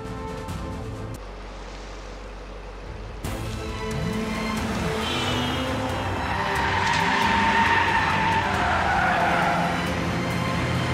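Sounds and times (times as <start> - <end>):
car engine revving: 1.2 - 10.9
tyres squealing in a skid: 5.0 - 10.9.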